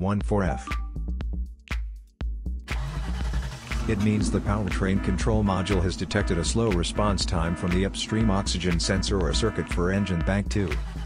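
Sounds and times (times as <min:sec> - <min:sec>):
background music with beat: 0:00.2 - 0:11.0
car engine sound effect: 0:02.7 - 0:10.0.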